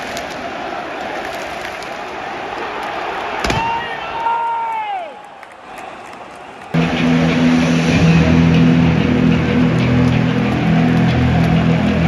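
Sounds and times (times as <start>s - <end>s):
large crowd noise: 0.0s - 12.0s
loud music over sound system: 6.8s - 12.0s.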